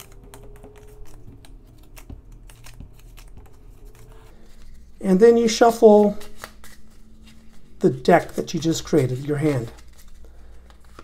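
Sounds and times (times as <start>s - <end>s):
cards clicking and tapping: 0.0s - 4.8s.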